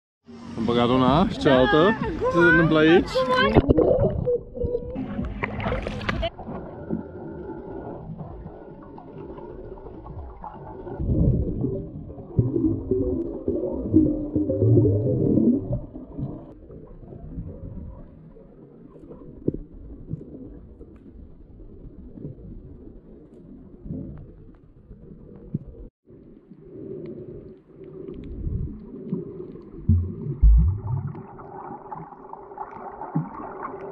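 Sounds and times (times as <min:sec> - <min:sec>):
muffled underwater rumble: 0:00.3 - 0:33.9
underwater bubbling: 0:01.4 - 0:33.9
water splash: 0:03.1 - 0:16.5, 0:29.4 - 0:33.9.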